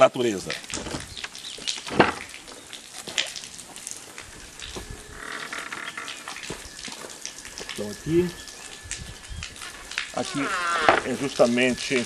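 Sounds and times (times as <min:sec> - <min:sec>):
wooden gate clack: 0:01.9 - 0:02.3, 0:09.6 - 0:11.2.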